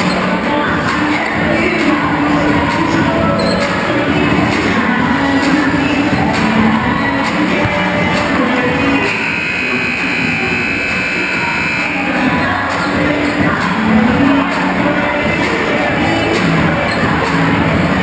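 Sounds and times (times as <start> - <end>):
crowd noise: 0.0 - 18.0
music in a gymnasium: 0.0 - 18.0.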